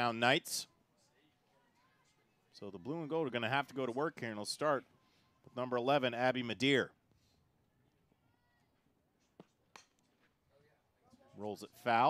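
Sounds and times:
bat hitting ball clicks: 9.4s - 10.0s.

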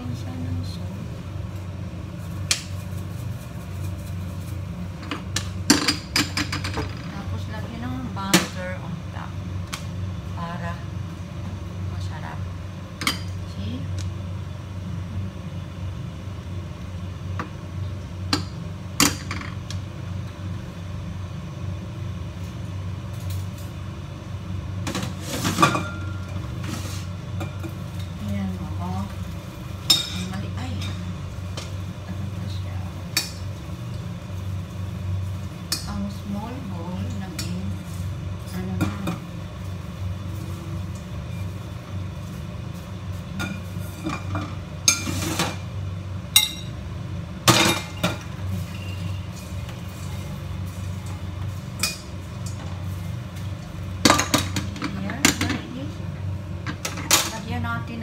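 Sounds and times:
steady low hum: 0.0s - 58.0s
frying pan and utensils clattering: 5.0s - 7.1s, 24.9s - 28.0s, 29.8s - 31.1s, 43.4s - 45.7s, 47.4s - 52.8s, 54.0s - 55.7s, 56.7s - 57.5s.

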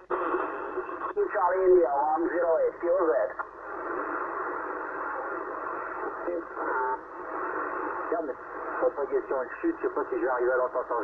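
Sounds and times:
faint garbled radio voices: 0.0s - 11.0s
radio static hiss: 0.0s - 11.0s
voice from radio speaker: 6.2s - 7.1s.

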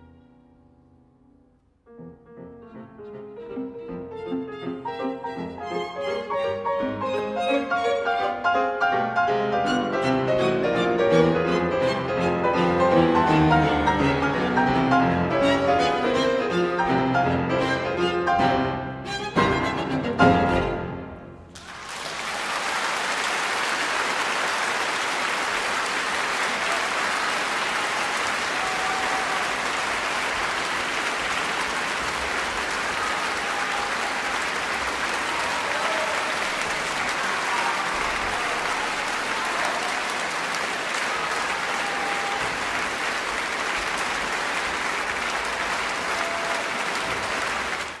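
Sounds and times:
audience applauding: 21.5s - 48.0s.

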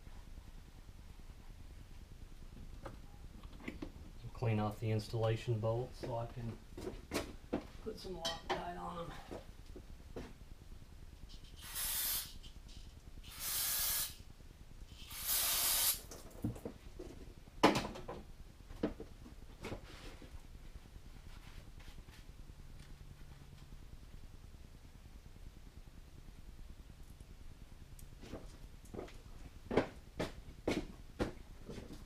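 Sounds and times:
spray hissing bursts: 11.6s - 12.4s, 13.3s - 14.2s, 15.0s - 16.1s.

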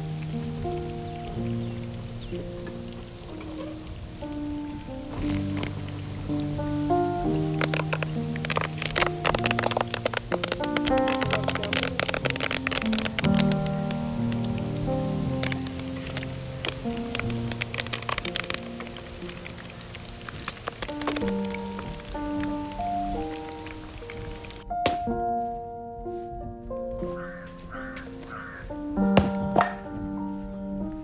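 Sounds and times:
fish frying in hot oil: 0.0s - 24.6s
background music sustained notes: 0.0s - 31.0s.

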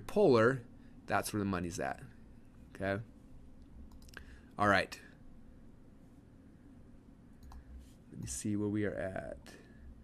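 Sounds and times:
faint click: 3.6s - 4.3s, 7.4s - 8.3s.

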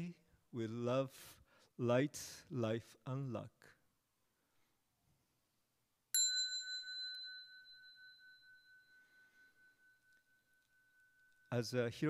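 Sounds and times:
small bell ringing: 6.2s - 11.6s.

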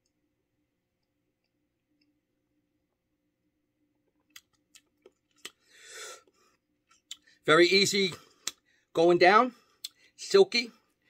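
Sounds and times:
wet mouth clicks and lip smacks: 4.1s - 5.6s.

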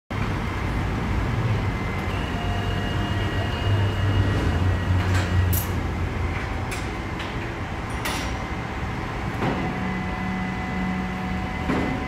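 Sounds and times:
street traffic: 0.1s - 12.0s.

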